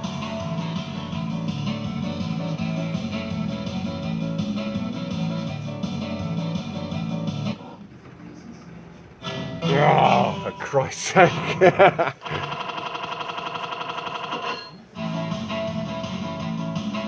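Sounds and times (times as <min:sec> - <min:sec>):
guitar-led fruit machine music: 0:00.0 - 0:07.6, 0:09.2 - 0:12.4, 0:14.8 - 0:17.0.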